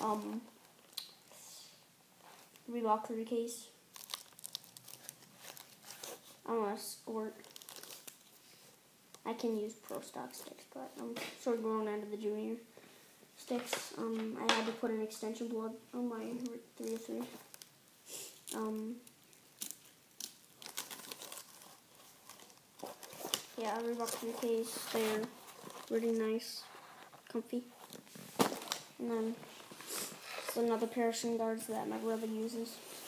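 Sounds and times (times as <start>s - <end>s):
shin guards crinkling and rustling: 3.9s - 6.5s, 7.4s - 8.8s, 16.3s - 30.9s.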